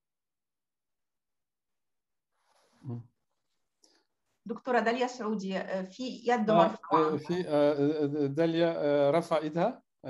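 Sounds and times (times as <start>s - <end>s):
short low vocal sound: 2.8s - 3.0s, 6.6s - 9.2s.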